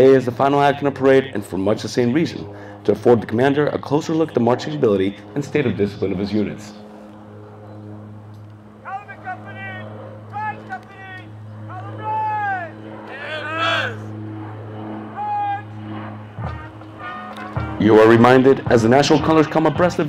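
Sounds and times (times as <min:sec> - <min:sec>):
steady low hum: 0:00.0 - 0:20.0
drill commands shouted: 0:08.8 - 0:14.1, 0:15.1 - 0:15.8.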